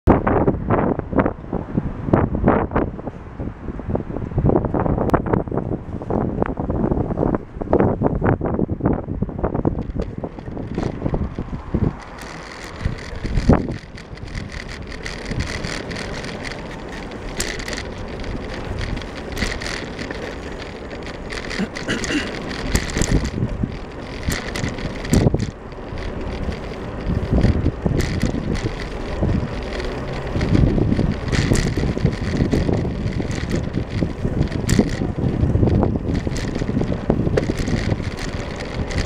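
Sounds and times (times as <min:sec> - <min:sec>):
road noise: 0:00.1 - 0:39.0
wind buffeting microphone: 0:00.1 - 0:39.0
bicycle knocks and bumps: 0:09.5 - 0:39.0.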